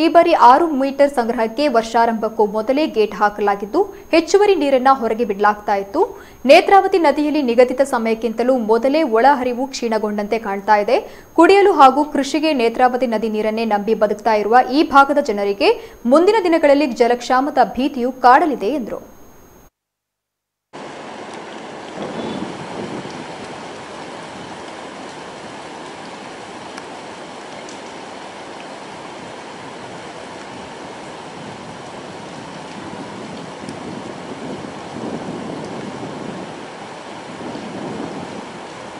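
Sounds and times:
river water rushing: 0:20.8 - 0:38.9.

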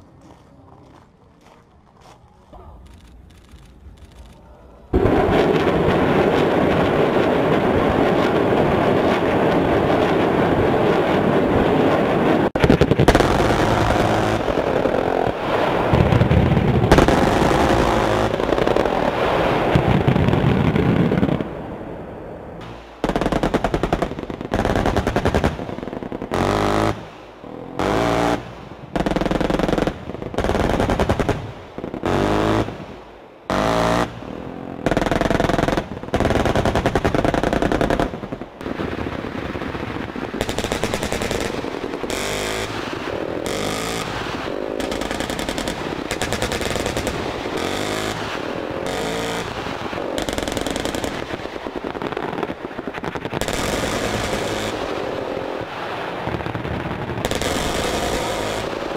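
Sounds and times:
automatic gunfire: 0:40.4 - 0:51.4, 0:57.3 - 0:58.9.

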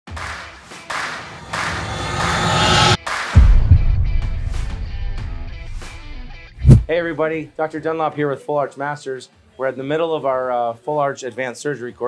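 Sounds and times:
intro music: 0:00.9 - 0:07.0
noisy swooshes: 0:01.0 - 0:07.0
deep bass hit: 0:01.4 - 0:07.0.

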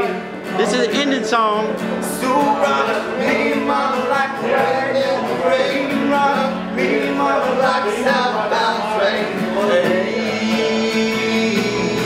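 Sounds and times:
strummed acoustic guitar: 0:00.0 - 0:12.0
men singing together: 0:01.9 - 0:12.0.

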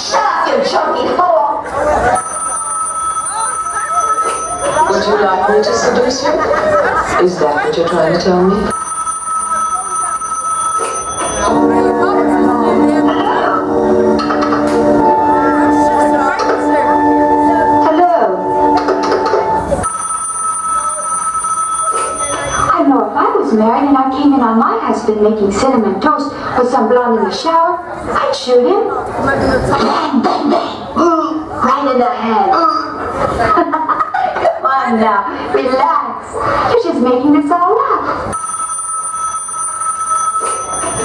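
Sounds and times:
telephone ringing: 0:02.1 - 0:06.0, 0:08.6 - 0:12.4, 0:18.4 - 0:22.7, 0:38.3 - 0:41.0.

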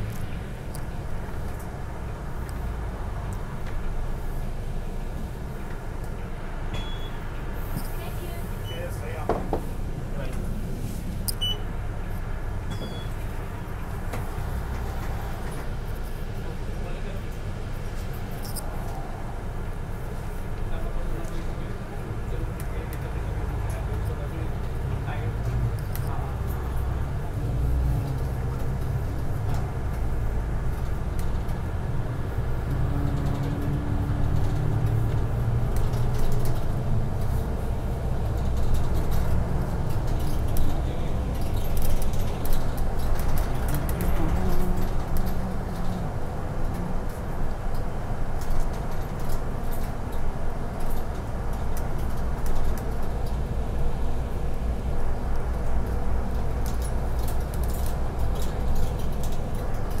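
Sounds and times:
bus engine running: 0:00.0 - 1:00.0
tyre and road noise: 0:00.0 - 1:00.0.

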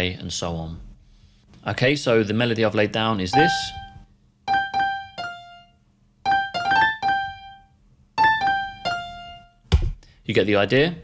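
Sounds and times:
piano melody: 0:03.3 - 0:09.6.

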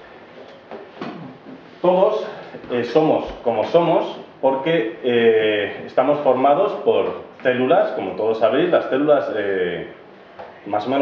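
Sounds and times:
man talking: 0:01.8 - 0:10.0, 0:10.6 - 0:11.0.

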